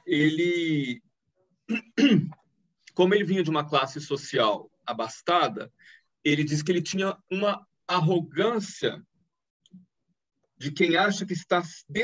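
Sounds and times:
person clearing throat: 1.7s - 2.4s.

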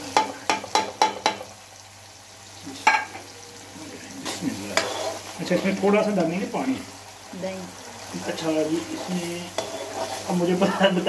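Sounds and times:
sauce sizzling in hot oil: 0.0s - 11.0s
spoon tapping metal pan: 0.1s - 1.5s.

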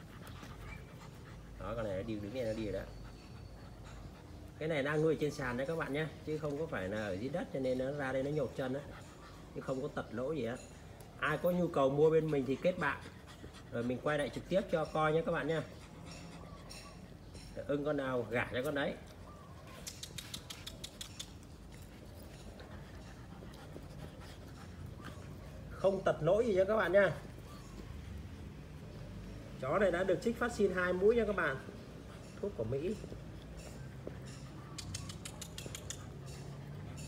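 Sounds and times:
puppies clicking and scuffling: 0.0s - 37.0s
puppy claws clicking on tiles: 19.8s - 21.7s, 34.7s - 36.3s.

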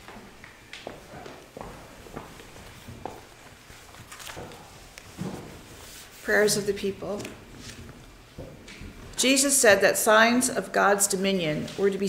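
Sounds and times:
faint footsteps: 0.0s - 9.8s.

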